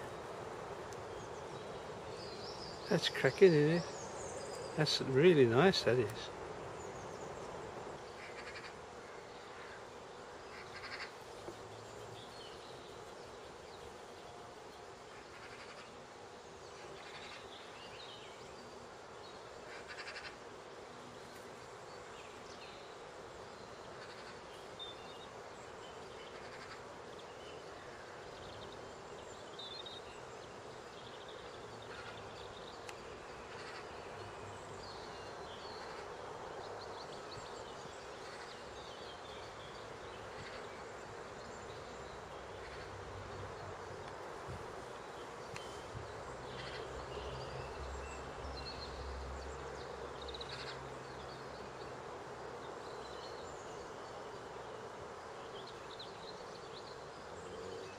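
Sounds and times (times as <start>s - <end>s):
steady background hiss: 0.0s - 57.9s.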